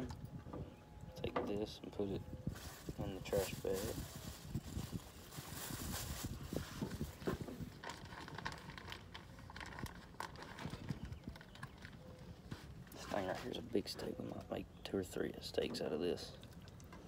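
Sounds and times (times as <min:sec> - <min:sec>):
light knocks and rustles of handling: 0:05.9 - 0:14.6.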